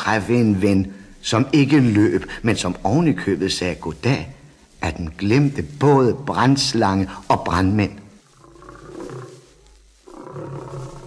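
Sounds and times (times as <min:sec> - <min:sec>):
lion growling: 0:08.3 - 0:11.0.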